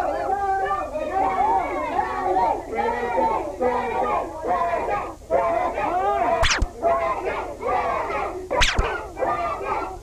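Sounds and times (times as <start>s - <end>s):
group of people singing: 2.8s - 10.0s
sharp cracks: 6.4s - 6.8s, 8.6s - 8.9s.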